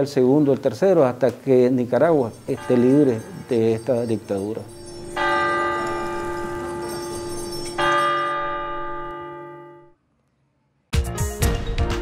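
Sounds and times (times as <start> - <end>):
church bell tolling: 2.1 - 10.0.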